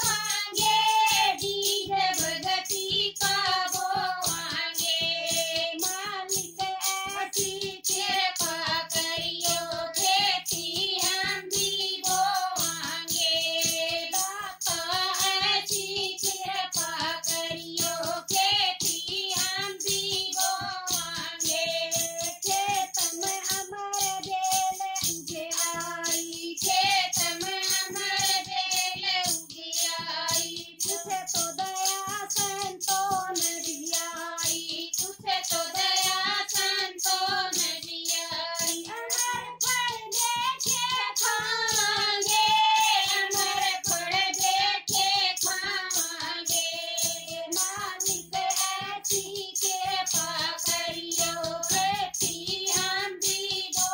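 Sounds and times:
hand-held clapping percussion: 0.0s - 53.9s
hand-struck drum beat: 0.0s - 53.9s
women singing together: 0.0s - 53.9s.

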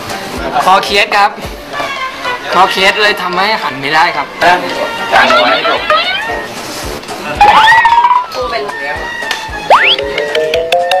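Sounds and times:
background music: 0.0s - 11.0s
comic sliding pitch glides: 9.7s - 10.2s.

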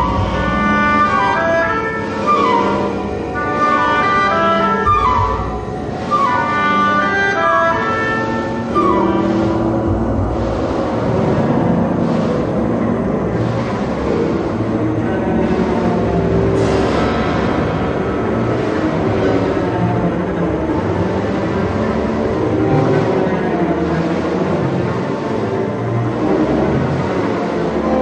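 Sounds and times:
dense noisy electroacoustic music: 0.0s - 28.0s
held low tones: 0.0s - 28.0s.

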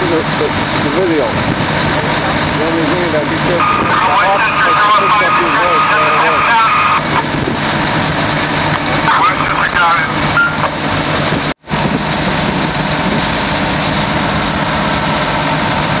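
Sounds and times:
distant voices: 0.0s - 11.2s
heavy truck engines idling: 0.0s - 16.0s.

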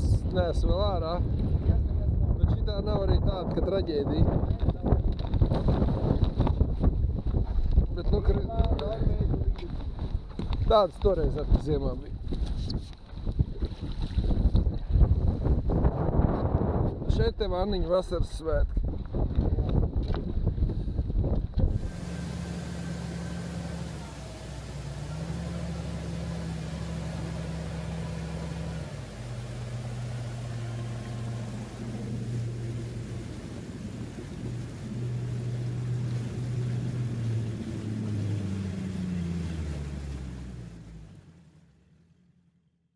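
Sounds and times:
outboard motor running: 0.0s - 16.8s, 19.1s - 42.5s
water rushing and splashing: 21.6s - 42.1s.

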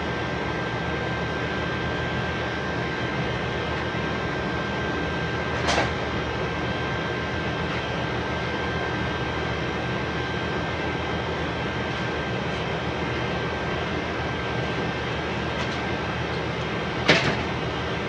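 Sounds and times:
machine drone with high whine: 0.0s - 18.0s.

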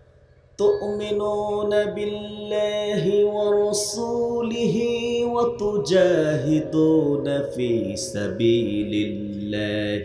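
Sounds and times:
man chanting over loudspeaker: 0.6s - 10.0s.

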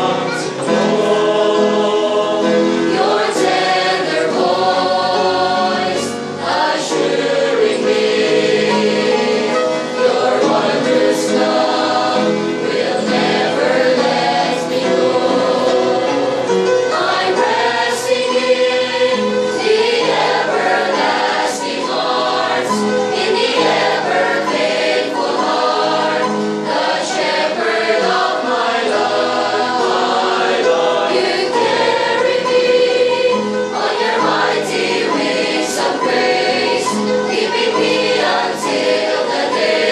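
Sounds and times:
choir singing in parts: 0.0s - 39.9s.

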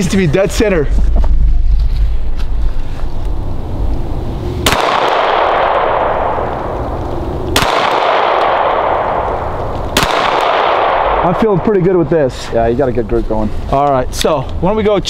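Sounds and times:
pistol shots echoing: 4.6s - 12.2s.

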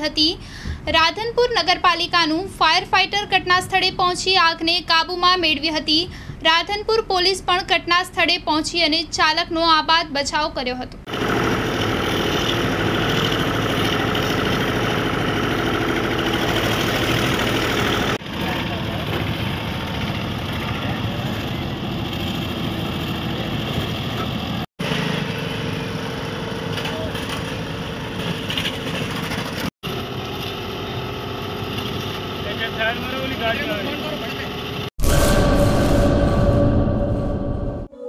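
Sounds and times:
engine running: 11.1s - 35.2s.

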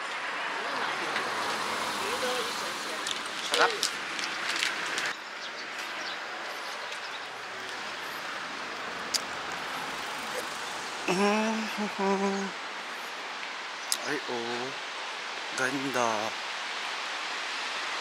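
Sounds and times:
rushing outdoor background noise: 0.0s - 18.0s.

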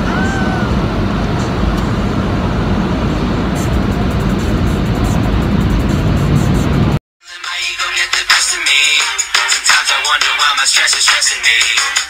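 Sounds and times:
car wash machinery rushing: 0.0s - 7.0s.

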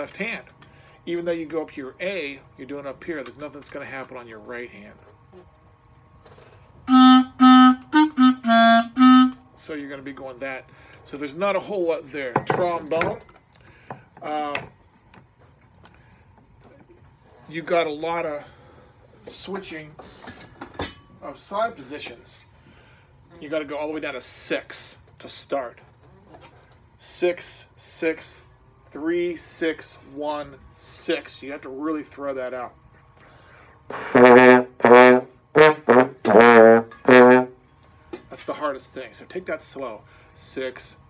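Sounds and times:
trombone playing detached notes: 6.9s - 9.4s, 33.9s - 37.6s
quick breath: 33.2s - 33.9s.

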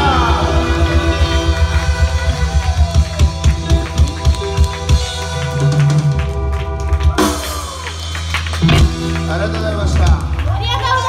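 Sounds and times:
ska band playing: 0.0s - 11.0s
drum hits: 7.0s - 10.2s.

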